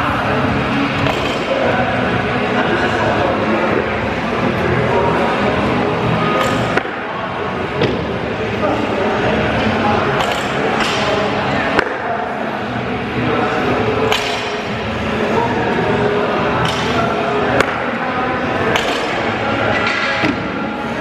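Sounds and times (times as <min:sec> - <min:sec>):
music: 0:00.0 - 0:21.0
voices: 0:00.0 - 0:21.0.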